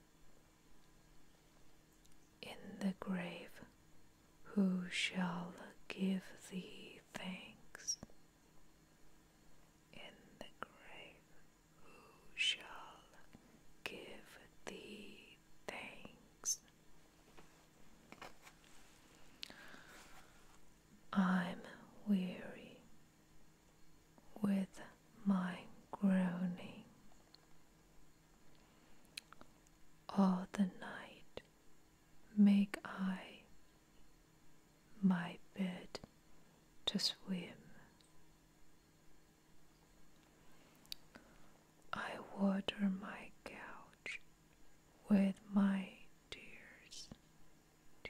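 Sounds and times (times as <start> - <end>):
person whispering: 2.4 - 3.7, 4.5 - 8.1, 10.0 - 11.2, 11.8 - 16.6, 21.1 - 22.9, 24.3 - 26.9, 30.1 - 31.3, 32.4 - 33.5, 42.0 - 44.2, 45.1 - 47.1
small mouth clicks: 29.1 - 29.5.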